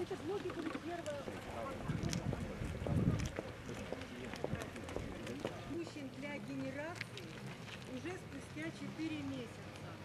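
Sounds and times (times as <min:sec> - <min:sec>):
footsteps of people walking: 0:00.0 - 0:10.0
indistinct talk: 0:00.0 - 0:10.0.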